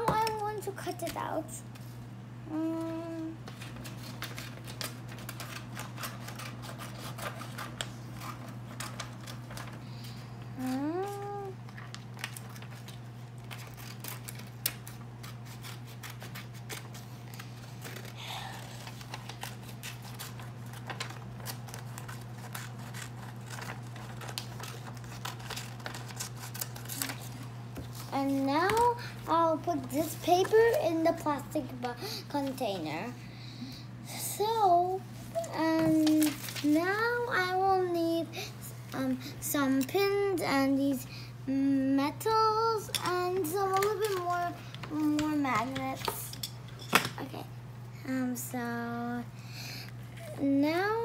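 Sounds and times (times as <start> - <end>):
steady low hum: 0.0 - 51.0
scissors snipping paper: 3.6 - 9.7, 12.2 - 18.2, 18.8 - 27.4.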